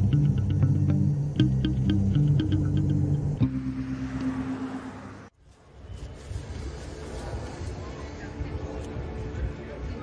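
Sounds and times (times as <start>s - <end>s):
electronic notes: 0.0s - 5.3s
held low tone with hiss: 0.0s - 10.0s.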